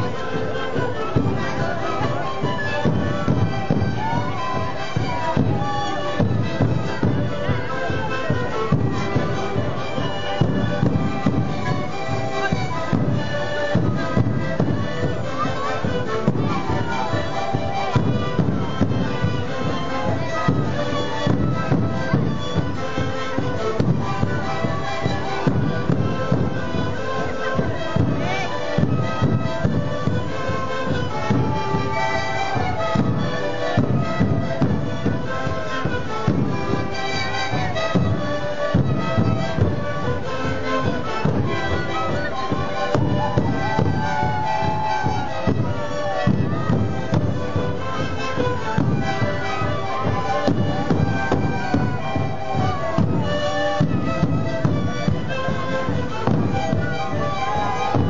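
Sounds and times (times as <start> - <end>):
large drums beating: 0.0 - 58.0
panpipes playing melody: 0.0 - 58.0.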